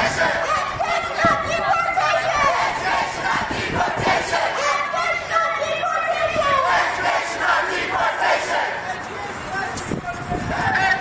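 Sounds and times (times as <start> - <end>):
crowd shouting a chant: 0.0 - 9.6.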